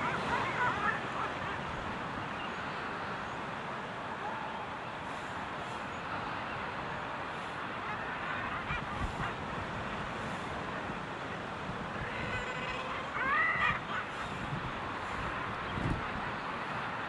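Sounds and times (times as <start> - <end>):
bird calls: 4.2 - 16.5.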